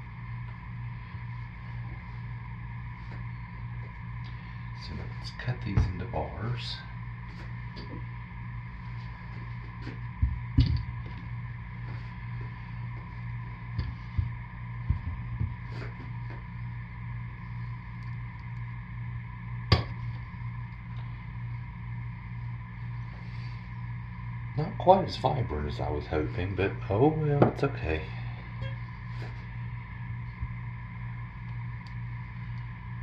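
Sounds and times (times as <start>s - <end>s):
steady hum: 0.0s - 33.0s.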